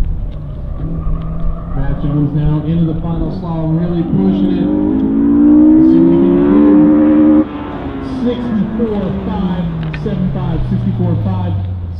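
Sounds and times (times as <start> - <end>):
car engine accelerating hard: 0.3 - 11.9.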